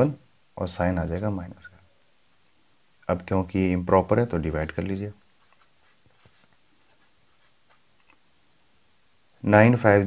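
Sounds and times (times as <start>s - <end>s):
marker pen writing on paper: 5.4s - 7.9s.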